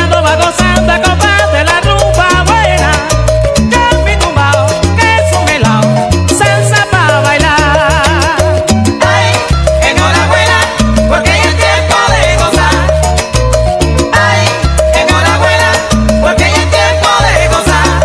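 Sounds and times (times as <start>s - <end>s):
salsa band music: 0.0s - 18.0s.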